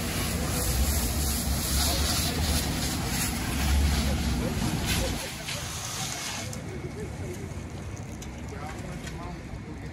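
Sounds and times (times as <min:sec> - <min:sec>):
hiss of water spray: 0:00.0 - 0:06.6.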